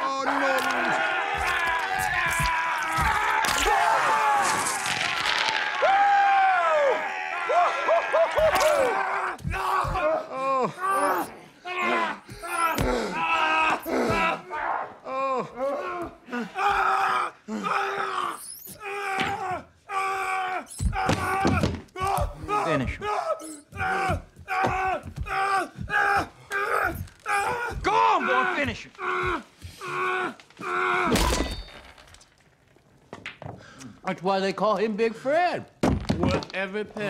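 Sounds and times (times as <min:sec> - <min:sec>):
men yelling and groaning: 0:00.0 - 0:31.6.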